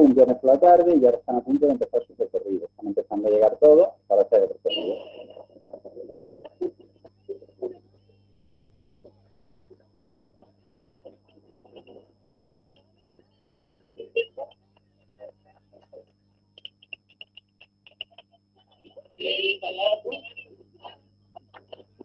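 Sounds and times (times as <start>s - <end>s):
faint thin voices from video: 0.0s - 7.9s
steady low hum: 0.0s - 22.0s.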